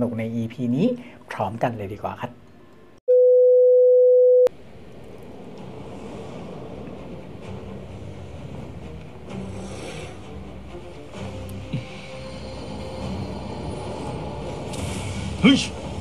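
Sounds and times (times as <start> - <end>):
faint atmospheric music: 4.8 - 16.0.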